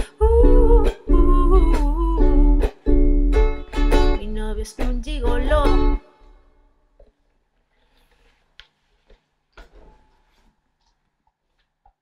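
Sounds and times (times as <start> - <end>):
ukulele strumming: 0.0 - 6.2.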